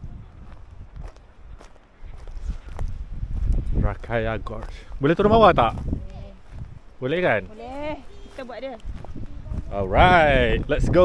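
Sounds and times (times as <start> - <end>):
footsteps on wood chips and gravel: 0.4 - 9.8.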